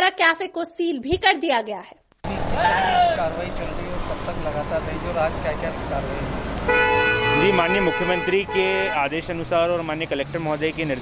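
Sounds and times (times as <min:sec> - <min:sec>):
indistinct voices talking: 0:02.3 - 0:06.4.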